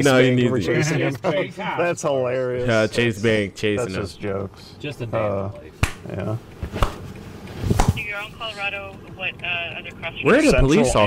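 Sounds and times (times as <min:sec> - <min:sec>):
voice over phone speaker: 0:08.0 - 0:11.0.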